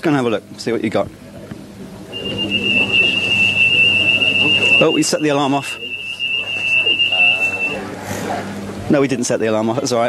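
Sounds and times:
high-pitched electronic alarm tone: 0:02.2 - 0:07.8.

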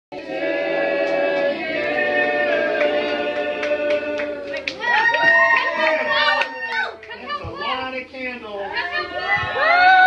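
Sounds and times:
people and children talking: 0:04.7 - 0:10.0.

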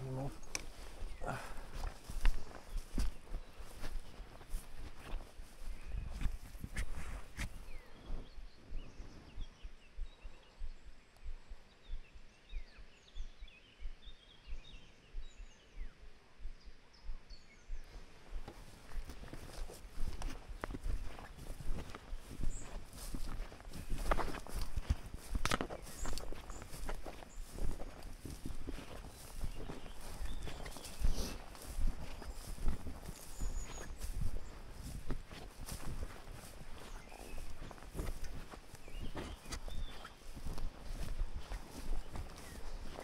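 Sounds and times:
footsteps through tall grass: 0:00.0 - 0:09.2, 0:17.8 - 0:43.0
grass swishing: 0:18.5 - 0:43.0.

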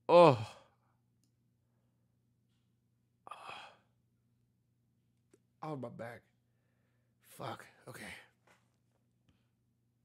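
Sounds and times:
man sighing: 0:00.1 - 0:00.7, 0:03.3 - 0:03.9.

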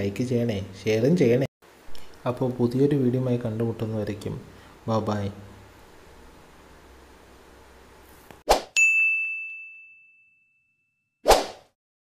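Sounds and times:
bright bell-like ding: 0:08.8 - 0:11.1
whoosh: 0:11.2 - 0:11.7.

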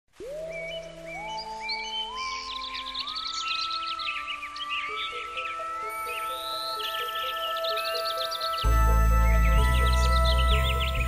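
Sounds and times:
soft ambient music: 0:00.1 - 0:11.0
birdsong chirping: 0:00.2 - 0:11.0.

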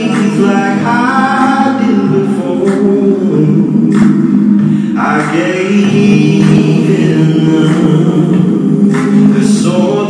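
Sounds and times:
voices singing long notes: 0:00.0 - 0:10.0.

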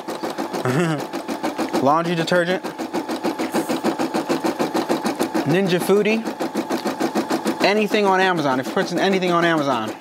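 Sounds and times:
embroidery machine needle clatter: 0:00.0 - 0:10.0.

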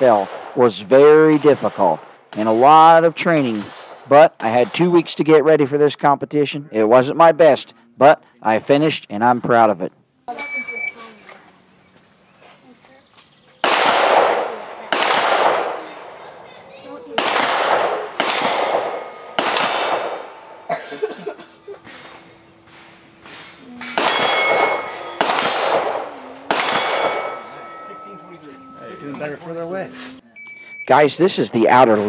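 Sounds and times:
pistol shots: 0:00.0 - 0:05.0, 0:13.6 - 0:16.2, 0:17.1 - 0:20.7, 0:22.7 - 0:27.8
steel plate ringing: 0:23.8 - 0:29.8.

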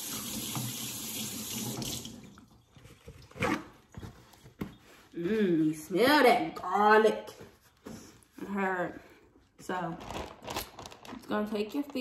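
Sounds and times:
paper towel rustling: 0:02.8 - 0:08.6.

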